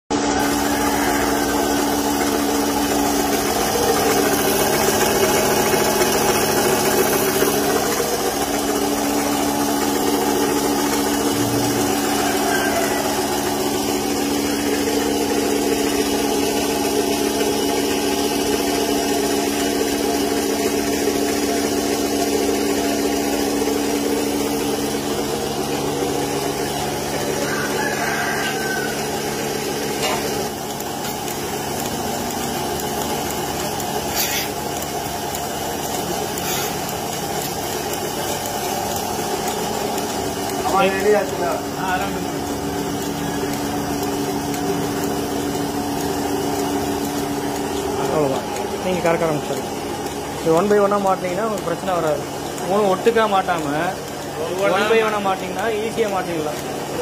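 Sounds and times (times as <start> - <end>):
vacuum pump humming: 0.1 - 57.0.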